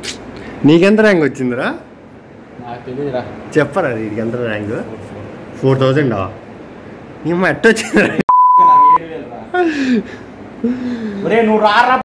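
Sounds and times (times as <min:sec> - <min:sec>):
people laughing: 0:07.8 - 0:08.8
censor beep: 0:08.3 - 0:09.0.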